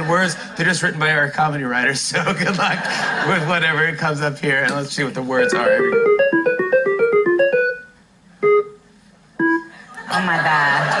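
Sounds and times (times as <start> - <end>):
rapid spinning run of notes: 5.4 - 7.8
electronic chime notes: 5.4 - 8.8, 9.4 - 9.7.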